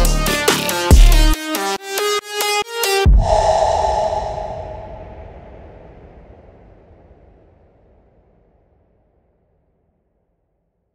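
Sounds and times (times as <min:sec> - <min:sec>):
low rumble: 0:03.1 - 0:07.5
hissing noise swell: 0:03.2 - 0:06.2.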